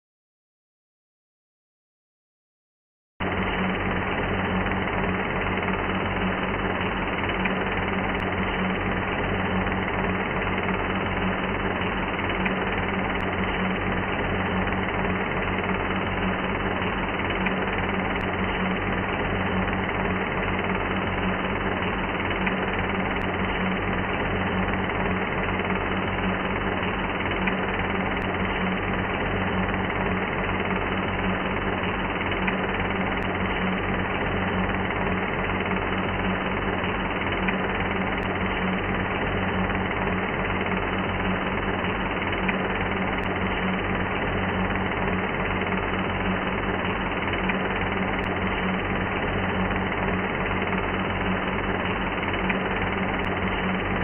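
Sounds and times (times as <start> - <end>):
fast mechanical rattle: 3.2 - 54.0
industrial noise drone: 3.2 - 54.0
low hum: 3.2 - 54.0.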